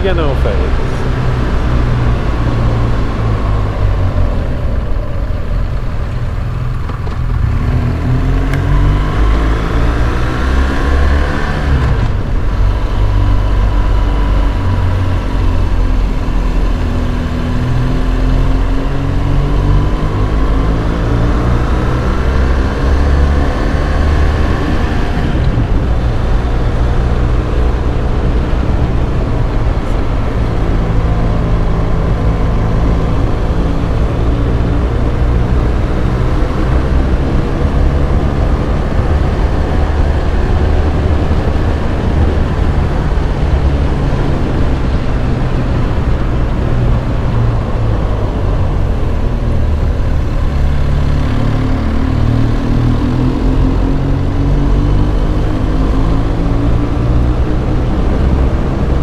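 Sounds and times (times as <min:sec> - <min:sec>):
wind rumble: 0:00.0 - 0:59.0.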